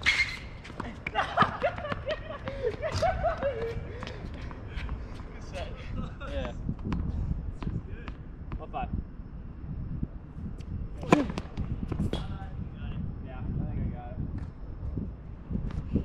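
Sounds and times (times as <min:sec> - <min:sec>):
racket hitting tennis ball: 0:11.0 - 0:12.2.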